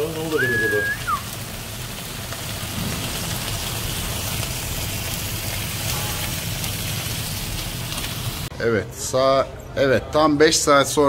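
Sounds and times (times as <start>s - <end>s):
meat sizzling in a metal pan: 0.0s - 8.5s.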